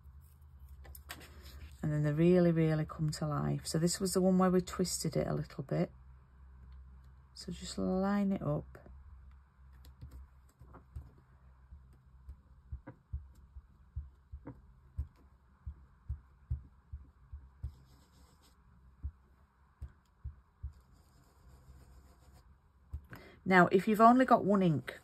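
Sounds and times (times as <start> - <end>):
sponge dabbing on paper: 11.8 - 23.1.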